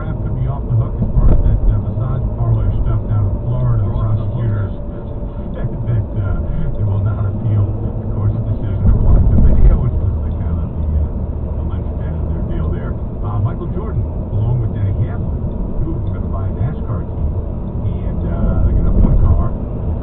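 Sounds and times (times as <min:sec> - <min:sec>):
car road and engine rumble: 0:00.0 - 0:20.0
muffled car radio talk: 0:00.0 - 0:20.0.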